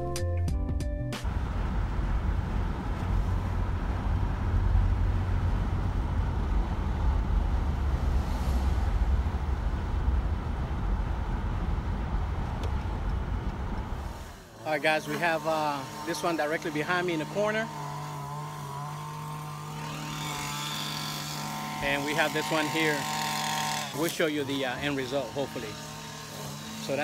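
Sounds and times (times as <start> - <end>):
intro music: 0.0 - 1.5
vehicle road and engine rumble: 1.2 - 27.0.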